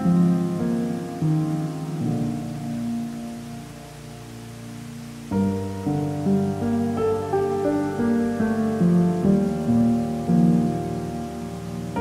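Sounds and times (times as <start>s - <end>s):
falling water: 0.0s - 12.0s
soft piano chords: 0.0s - 12.0s.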